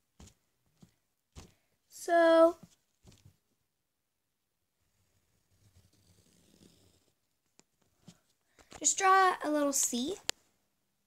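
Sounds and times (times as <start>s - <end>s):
pencil scratching on paper: 5.2s - 7.2s.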